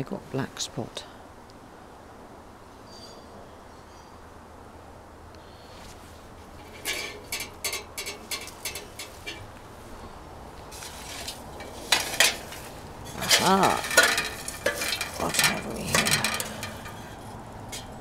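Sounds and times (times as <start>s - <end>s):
faint outdoor background: 0.0s - 18.0s
leafy stems rustling: 5.6s - 18.0s.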